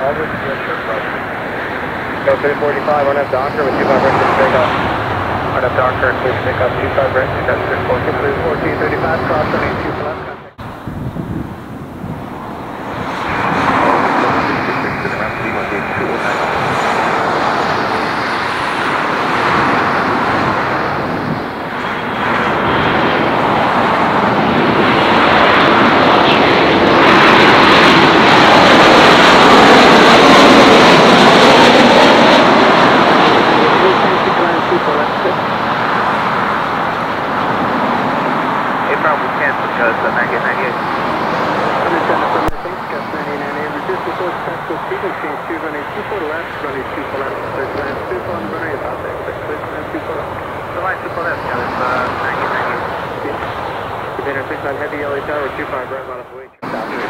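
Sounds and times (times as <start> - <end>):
jet airliner passing: 0.0 - 57.0.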